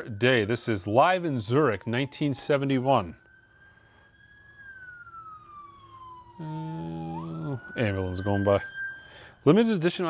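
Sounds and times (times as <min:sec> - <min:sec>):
faint ambulance siren wailing: 0:00.0 - 0:10.0.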